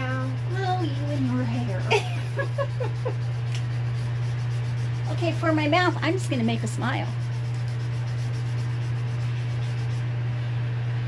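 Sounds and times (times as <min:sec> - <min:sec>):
pencil scratching on paper: 0:00.0 - 0:10.1
steady low hum: 0:00.0 - 0:11.0.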